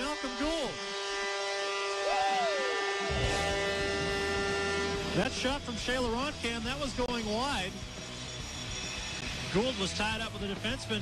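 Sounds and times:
goal horn blowing: 0.0s - 5.5s
rising and falling cry: 2.0s - 3.9s.

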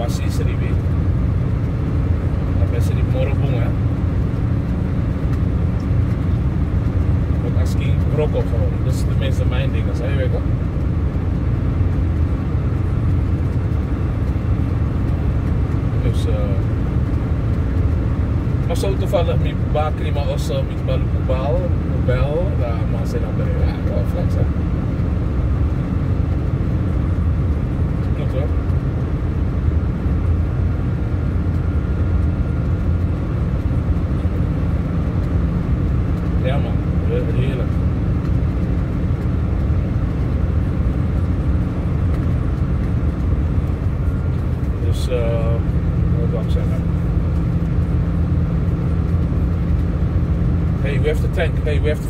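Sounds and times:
car engine and tyres rumble: 0.0s - 52.0s.

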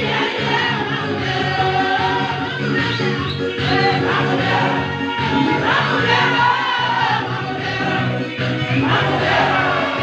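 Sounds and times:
group singing gospel song: 0.0s - 10.0s
woman singing through loudspeaker: 0.0s - 10.0s.

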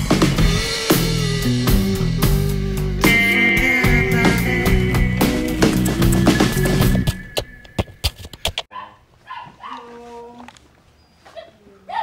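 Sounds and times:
rock music: 0.0s - 7.8s
small dog whining and yipping: 8.7s - 10.2s.

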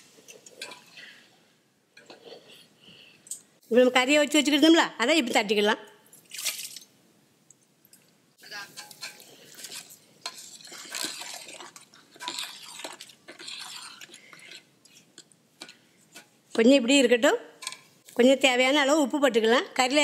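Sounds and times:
ladle scraping pot: 0.2s - 1.2s, 2.0s - 2.6s, 8.7s - 16.6s
ladle stirring thick porridge: 8.7s - 16.6s.

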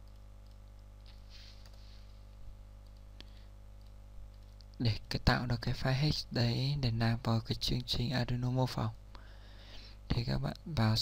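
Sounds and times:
computer mouse clicks: 0.0s - 4.8s
faint electrical hum: 0.0s - 11.0s.

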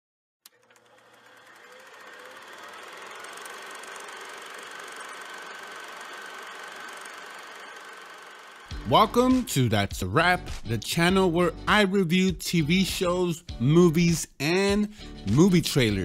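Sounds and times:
mechanical whirring: 0.5s - 8.8s.

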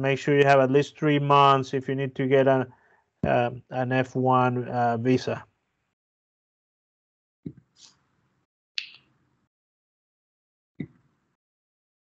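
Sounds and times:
sharp click: 8.8s - 9.0s.

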